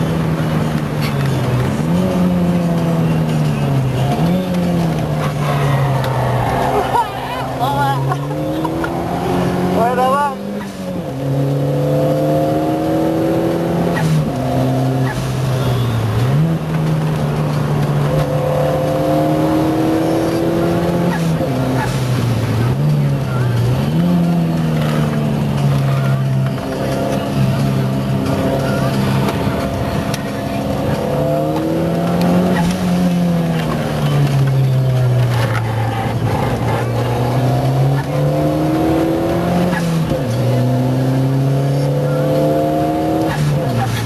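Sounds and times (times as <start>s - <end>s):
race car engine revving: 0.0s - 44.0s.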